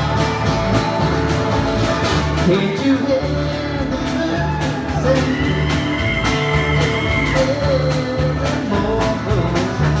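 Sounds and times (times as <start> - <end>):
double bass walking line: 0.0 - 10.0
strummed acoustic guitar: 0.0 - 10.0.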